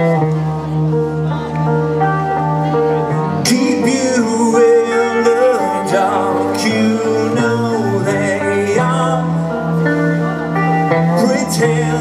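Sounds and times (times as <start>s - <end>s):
electric guitar: 0.0s - 12.0s
man singing: 3.2s - 12.0s.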